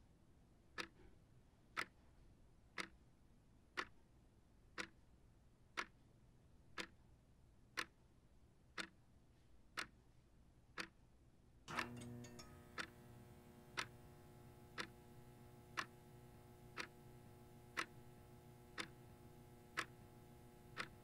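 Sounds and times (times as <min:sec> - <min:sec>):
wall clock ticking: 0:00.8 - 0:01.0, 0:02.8 - 0:03.0, 0:04.8 - 0:05.0, 0:06.7 - 0:07.0, 0:08.8 - 0:09.0, 0:09.8 - 0:10.0, 0:10.8 - 0:11.0, 0:11.7 - 0:21.0
faint steady hum: 0:11.7 - 0:21.0.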